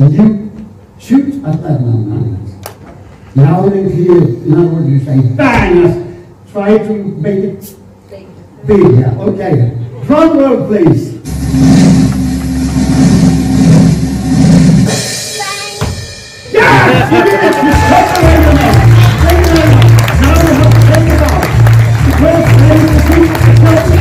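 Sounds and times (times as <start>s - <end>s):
cymbal crash: 11.3s - 17.0s
recorded drum roll: 11.3s - 17.0s, 17.6s - 24.0s
upbeat music with drum beat: 11.3s - 24.0s
applause: 17.2s - 24.0s.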